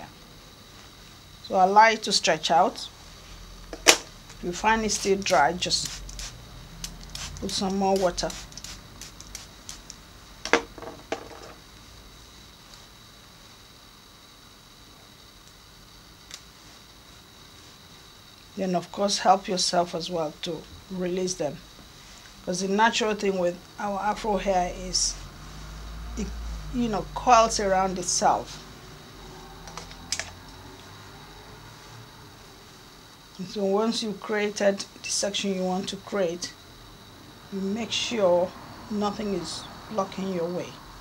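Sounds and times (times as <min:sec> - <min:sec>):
faint room hum: 0:00.0 - 0:41.0
steady high whine: 0:00.0 - 0:41.0
spray bottle spritzing: 0:05.0 - 0:10.0.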